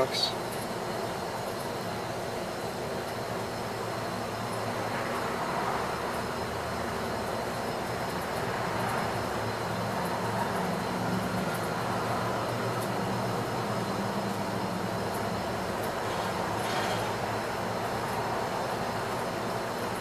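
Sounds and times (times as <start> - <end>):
outdoor rumble and hiss: 0.0 - 20.0.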